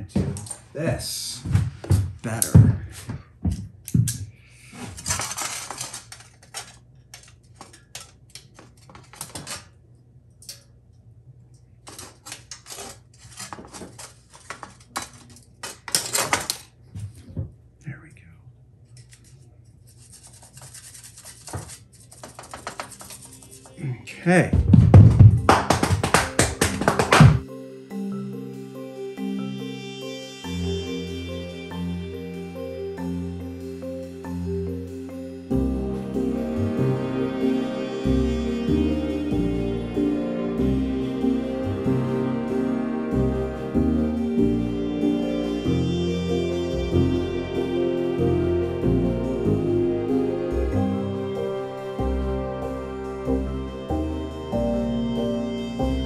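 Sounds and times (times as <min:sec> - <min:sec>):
metal pieces clicking and scraping: 0:04.9 - 0:09.7, 0:11.8 - 0:16.7.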